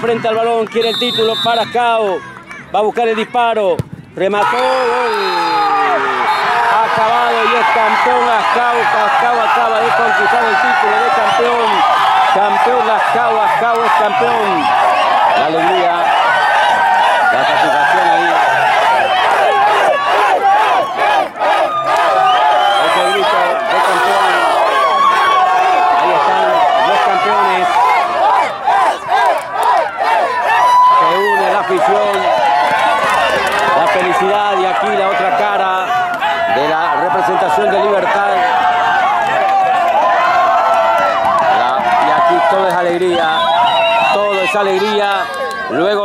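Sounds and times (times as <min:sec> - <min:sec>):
crowd shouting and cheering: 0:00.0 - 0:46.0.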